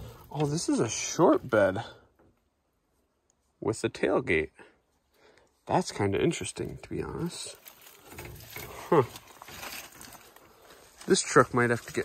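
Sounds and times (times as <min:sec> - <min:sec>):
branches rustling past: 0:06.7 - 0:12.0.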